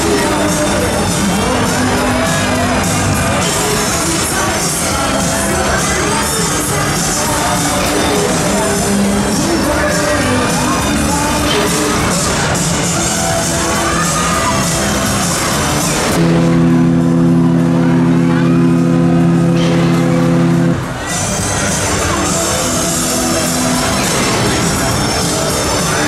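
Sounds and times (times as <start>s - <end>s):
loud fairground ride music: 0.0s - 26.0s
loud steady low chord: 16.0s - 21.1s.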